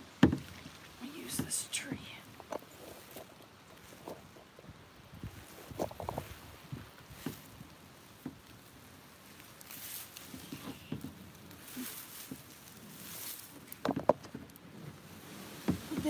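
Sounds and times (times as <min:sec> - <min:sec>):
branches and foliage rustling: 0:00.0 - 0:16.0.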